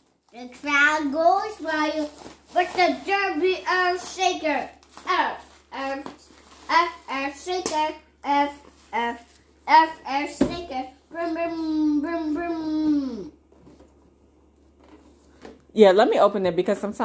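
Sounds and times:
young child's voice: 0.3 - 13.4.

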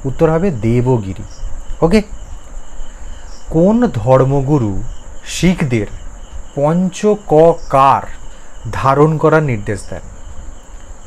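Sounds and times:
person speaking: 0.0 - 2.2, 3.3 - 10.1
low background hum: 0.0 - 11.0.

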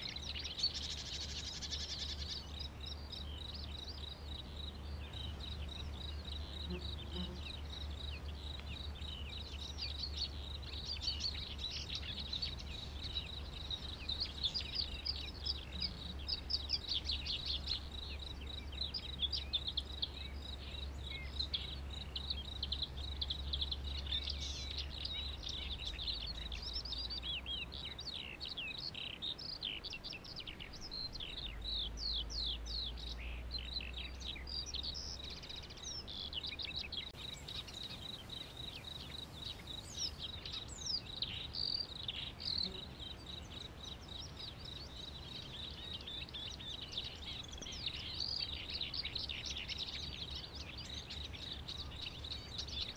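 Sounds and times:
birds chirping: 0.0 - 52.9.

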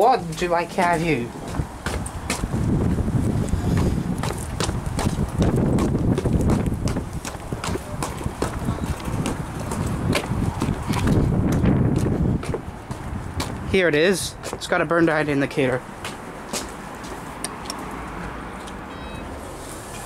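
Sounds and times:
footsteps on hard ground: 0.3 - 13.7, 14.3 - 14.8, 15.8 - 18.8
wind buffeting microphone: 1.1 - 15.0.

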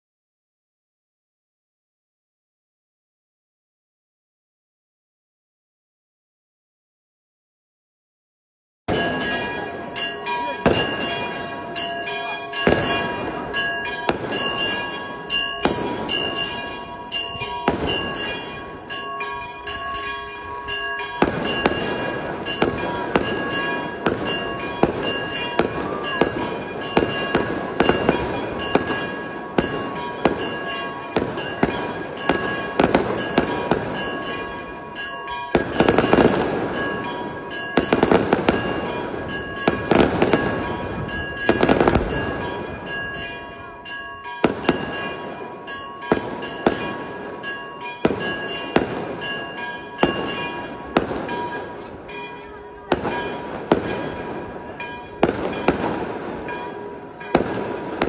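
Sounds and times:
church bells ringing: 8.9 - 58.0
fireworks bangs and crackling: 8.9 - 58.0.

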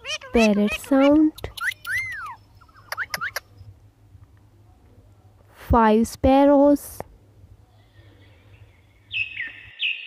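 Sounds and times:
parakeets calling: 0.0 - 3.4
faint background hiss: 0.0 - 10.0.

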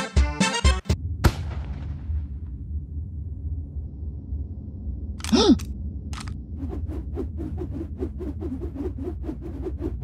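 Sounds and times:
low steady rumble: 1.0 - 9.4.

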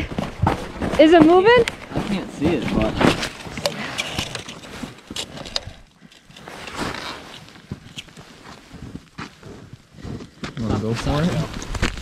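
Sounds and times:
snow crunching under boots: 0.0 - 3.9, 6.4 - 12.0
handling of fishing gear: 1.7 - 9.0.

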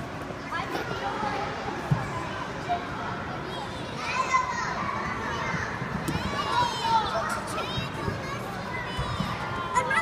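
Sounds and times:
babble of children's voices: 0.3 - 10.0
high child's voice: 3.4 - 10.0.

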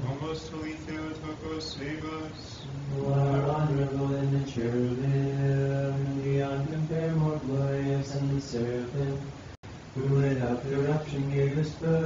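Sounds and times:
men chanting: 0.0 - 9.3, 10.0 - 12.0.

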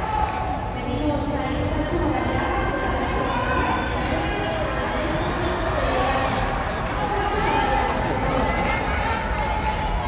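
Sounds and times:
spectators shouting and talking: 0.0 - 10.0
runners' footsteps on a track: 4.6 - 10.0.

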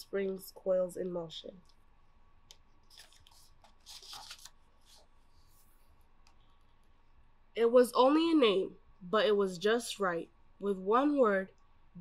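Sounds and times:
book page turning: 2.5 - 5.9.

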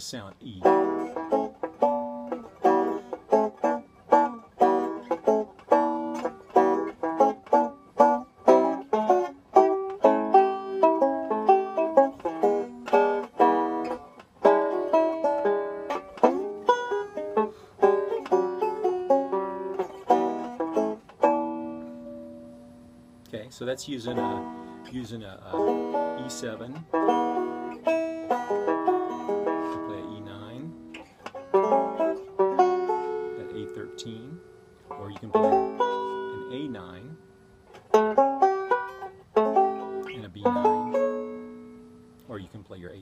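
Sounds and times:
banjo picking blues: 0.0 - 43.0.

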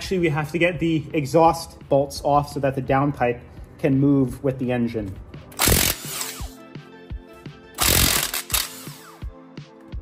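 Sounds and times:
background music: 0.0 - 10.0
impact wrench burst: 5.6 - 6.6, 7.8 - 9.2.

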